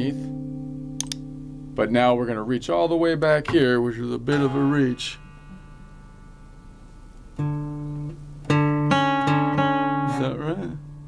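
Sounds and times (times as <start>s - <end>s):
acoustic guitar note plucked: 0.0s - 2.1s, 2.8s - 11.0s.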